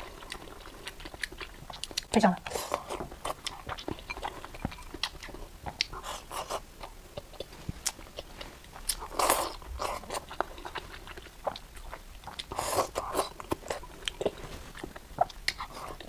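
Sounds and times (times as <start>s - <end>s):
close-miked chewing: 0.0s - 16.0s.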